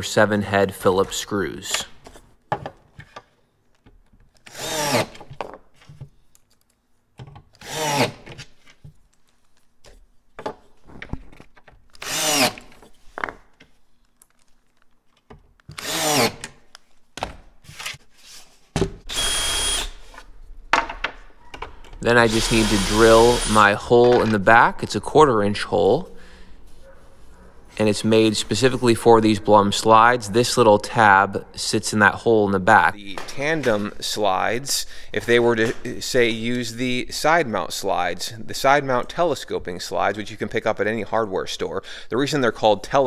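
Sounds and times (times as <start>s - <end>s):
drill boring a hole: 12.0s - 12.6s, 19.1s - 20.0s, 22.0s - 23.7s
cordless drill driving screws: 12.0s - 12.7s, 15.8s - 16.4s, 19.1s - 20.0s, 22.1s - 23.7s.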